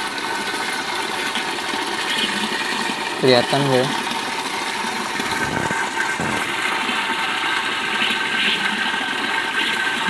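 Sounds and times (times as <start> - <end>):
water pouring into tank: 0.0 - 10.0.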